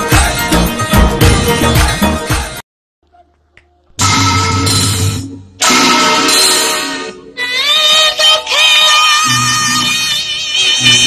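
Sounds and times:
backing music: 0.0s - 2.6s, 4.0s - 11.0s.

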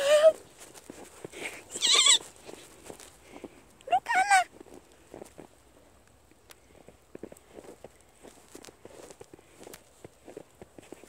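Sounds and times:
footsteps crunching in snow: 0.0s - 11.0s
toddler squealing: 1.7s - 2.3s.

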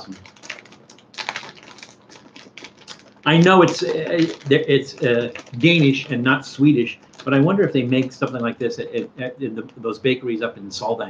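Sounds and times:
plastic wrapper crinkling: 0.0s - 10.3s.

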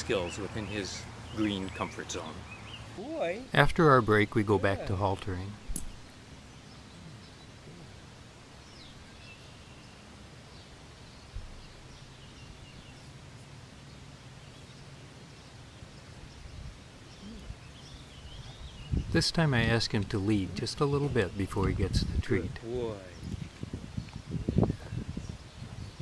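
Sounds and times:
outdoor background noise: 0.0s - 26.0s
faint bird chirps: 5.6s - 19.2s.

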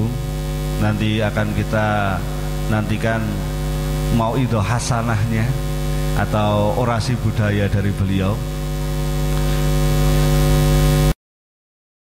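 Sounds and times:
electrical mains hum: 0.0s - 11.2s.

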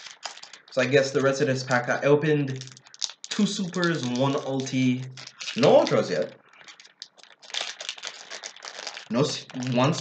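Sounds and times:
card wrapper crinkling: 0.0s - 0.9s, 2.6s - 10.0s.

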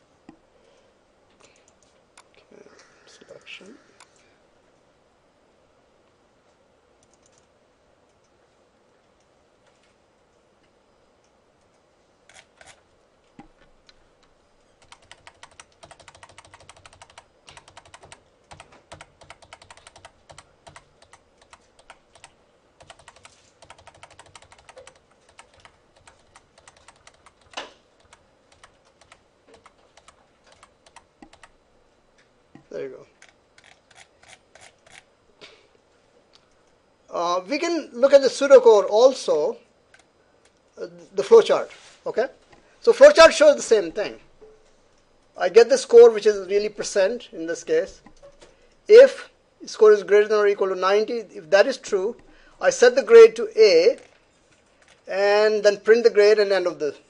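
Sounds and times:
keyboard and mouse clicking: 7.0s - 7.5s, 14.8s - 31.6s, 33.2s - 35.0s.

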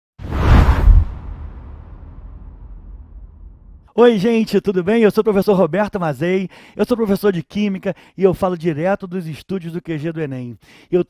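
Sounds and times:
deep whoosh: 0.2s - 3.9s
low rumbling tail: 0.2s - 3.9s.

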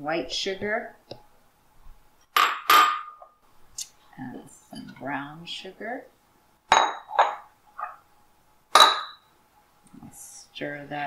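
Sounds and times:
glass bowls clinking: 2.4s - 3.3s, 6.7s - 8.0s, 8.7s - 9.3s.

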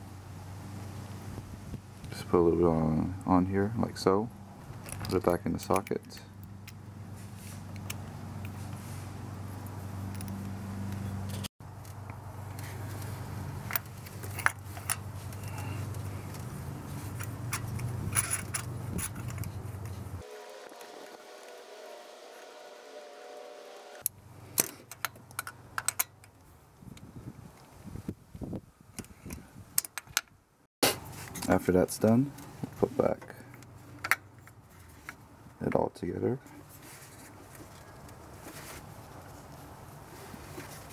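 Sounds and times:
steady low hum: 6.3s - 24.6s.

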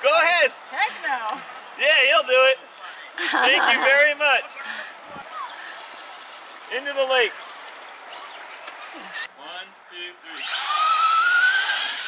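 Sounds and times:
electric motor whining: 5.4s - 9.3s, 10.3s - 12.0s.

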